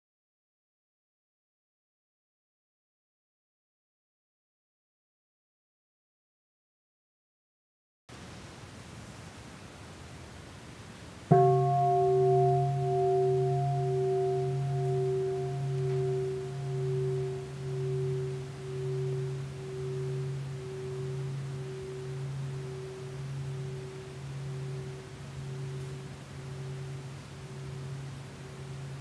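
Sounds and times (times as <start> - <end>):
bronze bowl bell ringing: 11.3 - 29.0.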